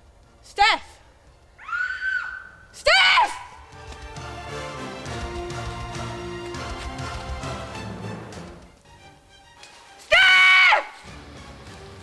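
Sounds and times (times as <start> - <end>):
girl screaming: 1.6 - 3.6, 10.1 - 11.0
soundtrack music: 3.7 - 10.1, 10.9 - 12.0.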